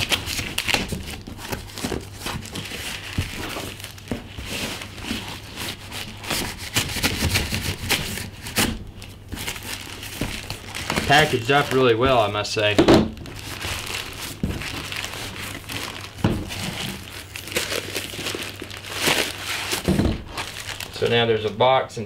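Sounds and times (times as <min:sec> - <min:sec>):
knife slitting plastic mailer: 0:00.0 - 0:04.9, 0:09.4 - 0:12.2
plastic and tape crinkling: 0:00.0 - 0:21.7.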